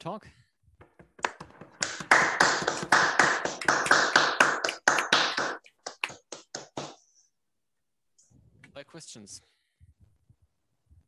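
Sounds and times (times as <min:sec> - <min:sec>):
hand clapping: 0:00.8 - 0:07.1.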